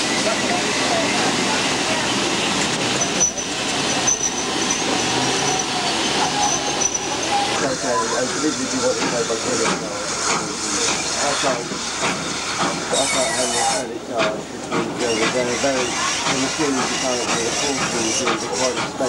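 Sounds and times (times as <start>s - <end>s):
passengers chattering: 0.0s - 19.0s
steam hissing: 0.0s - 19.0s
train running noise: 0.0s - 19.0s.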